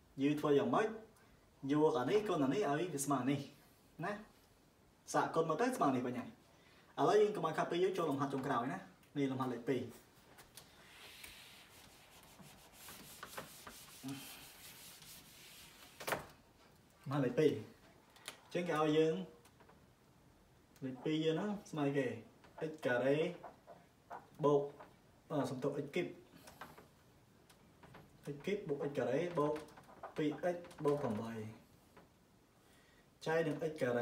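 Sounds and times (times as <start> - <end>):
eraser rubbing on whiteboard: 10.8 - 16.1.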